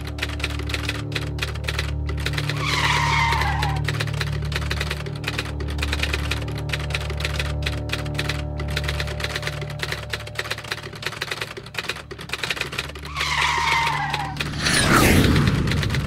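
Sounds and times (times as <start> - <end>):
dense rapid clicking: 0.0 - 16.0
loud falling screech: 2.6 - 3.8, 13.1 - 15.5.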